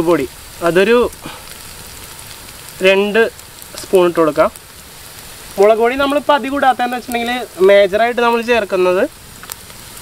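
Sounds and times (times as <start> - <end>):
steady hiss: 0.0 - 10.0
person speaking: 5.6 - 9.1.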